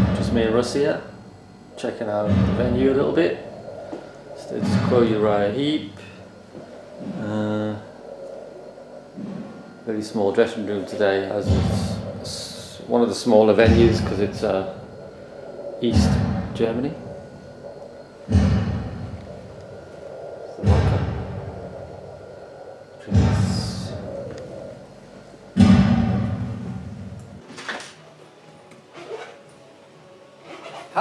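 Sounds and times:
heavy booming thuds: 2.1s - 8.2s, 11.4s - 12.9s, 13.5s - 22.2s, 23.0s - 24.9s, 25.6s - 27.4s.

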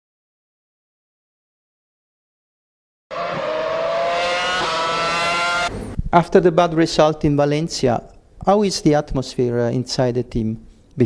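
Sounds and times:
racing car engine at high revs: 3.1s - 6.0s.

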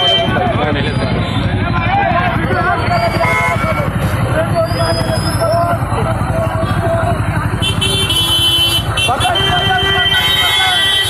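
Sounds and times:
motorcycle engines running: 0.0s - 11.0s.

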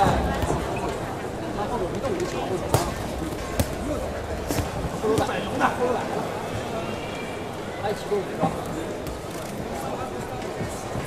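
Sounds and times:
crowd shouting and chattering: 0.0s - 11.0s.

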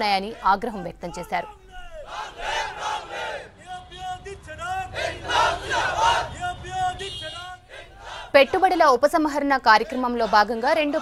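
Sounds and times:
crowd shouting slogans: 0.0s - 11.0s.

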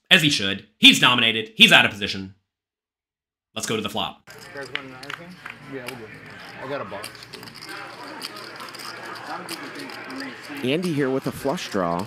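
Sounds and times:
background chatter: 4.3s - 12.0s
poker chips clicking: 5.8s - 12.0s.

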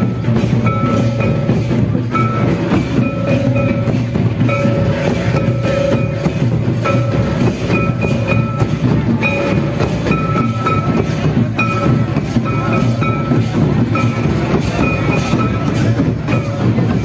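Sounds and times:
barrel drum beating: 0.0s - 17.0s
large kettle drum beating: 0.0s - 17.0s.

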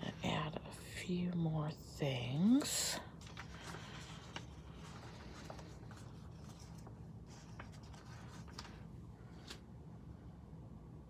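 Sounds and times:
paper rustling and rubbing: 3.1s - 9.6s.

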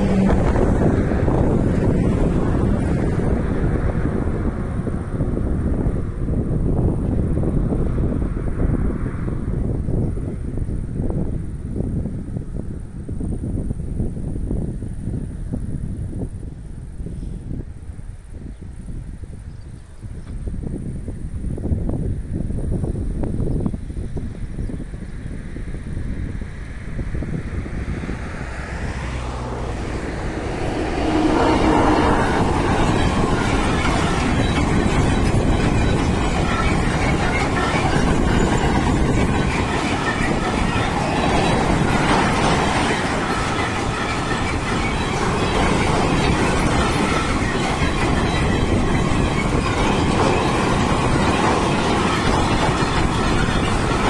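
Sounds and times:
freight train wheels on rails: 0.0s - 54.0s.

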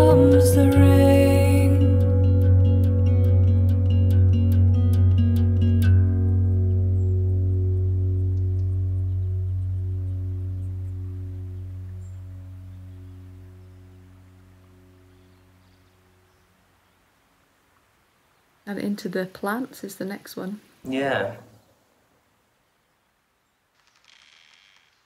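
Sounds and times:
plucked notes: 0.0s - 15.2s
low sustained bass tone: 0.0s - 16.5s.

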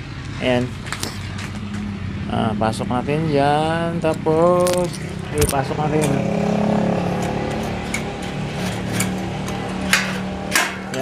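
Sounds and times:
metal knocks and clicks: 7.2s - 11.0s.

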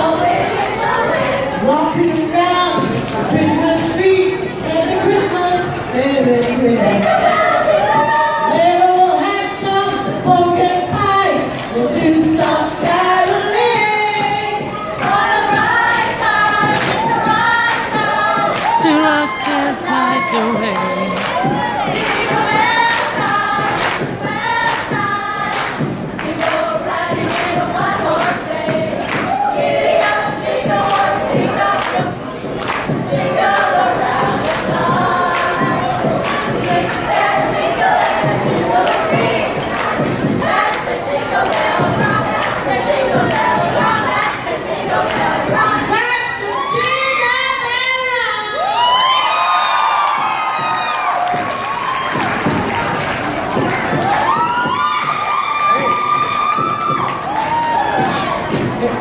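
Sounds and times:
women singing in harmony: 0.0s - 49.2s
audience cheering and whooping: 7.2s - 8.6s, 18.1s - 22.2s, 46.2s - 58.7s
steady percussive beat: 12.0s - 45.9s, 50.1s - 59.0s.

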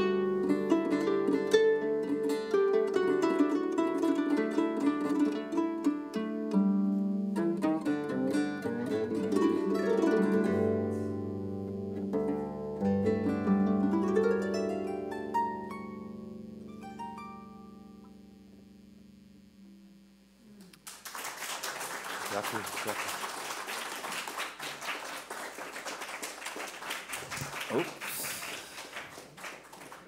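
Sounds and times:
plucked string instrument notes: 0.0s - 19.8s
audience applause: 20.8s - 30.0s.

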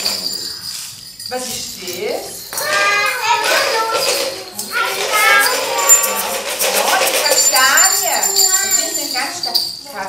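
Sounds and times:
hand rattles shaken: 0.0s - 10.0s.

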